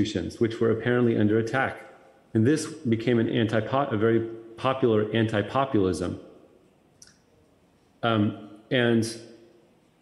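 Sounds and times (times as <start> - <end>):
man speaking: 0.0 - 6.4, 8.0 - 9.6.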